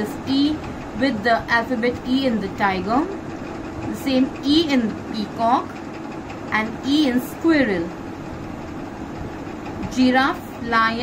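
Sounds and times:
low background hum: 0.0s - 11.0s.

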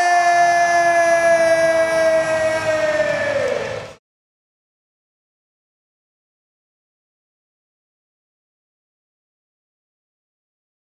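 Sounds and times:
announcer shouting long note: 0.0s - 4.0s.

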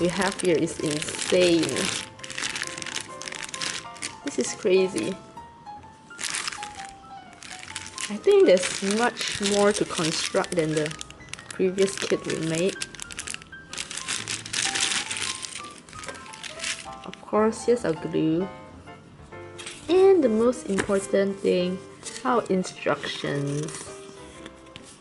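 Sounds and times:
small pieces rattling: 0.0s - 4.2s, 6.2s - 17.0s
plastic bags crinkling: 0.0s - 5.2s, 6.1s - 17.2s
soft background music: 0.0s - 25.0s.

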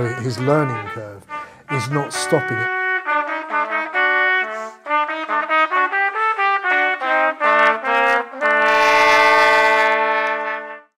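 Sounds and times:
trumpet music: 0.0s - 11.0s.

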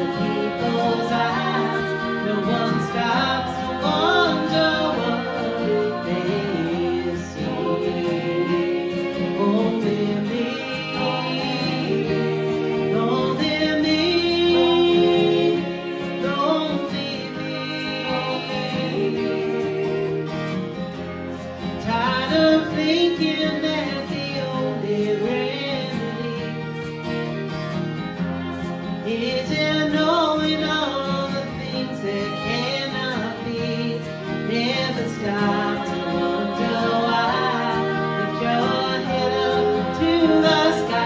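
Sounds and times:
acoustic guitar: 0.0s - 41.0s
bowed fiddle melody: 0.0s - 41.0s.

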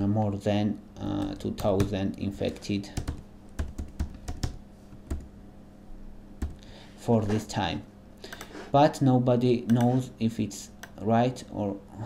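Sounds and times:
computer keyboard typing: 1.2s - 5.3s.

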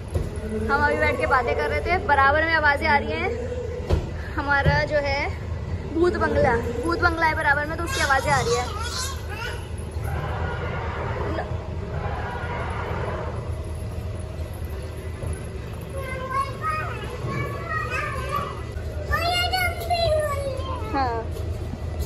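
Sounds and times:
low background hum: 0.0s - 22.0s.

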